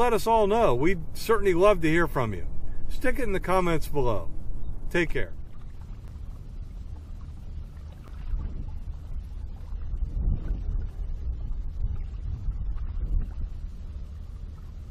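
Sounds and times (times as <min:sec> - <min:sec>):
wind buffeting microphone: 0:00.0 - 0:14.9.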